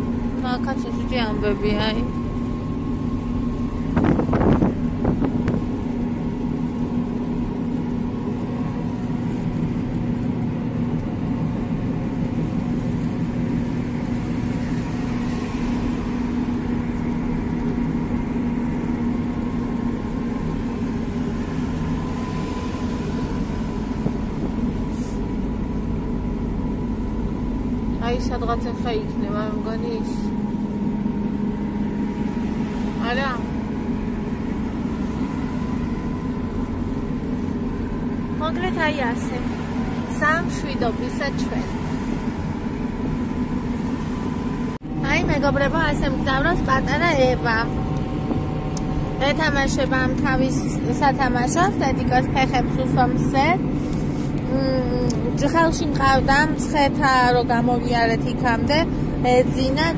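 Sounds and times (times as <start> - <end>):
car engine hum: 0.0 - 59.9
road noise: 0.0 - 59.9.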